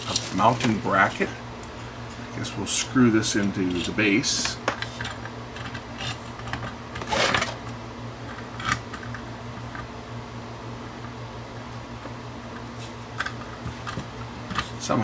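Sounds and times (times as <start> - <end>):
steady low hum: 0.0 - 15.0
metal parts scraping: 4.9 - 7.6.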